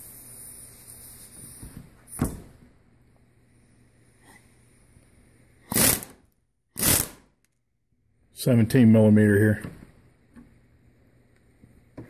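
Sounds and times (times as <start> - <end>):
pneumatic impact wrench: 5.6 - 7.3.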